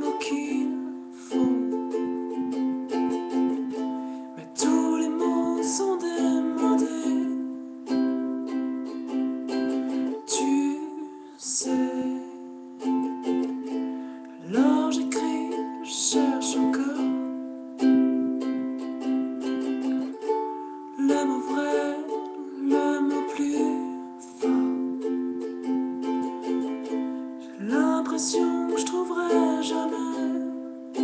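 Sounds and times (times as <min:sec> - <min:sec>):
man singing: 0:00.0 - 0:02.5, 0:04.3 - 0:08.6, 0:09.5 - 0:13.6, 0:14.2 - 0:18.2, 0:20.8 - 0:25.3, 0:26.6 - 0:31.0
ukulele strumming chords: 0:00.0 - 0:31.0.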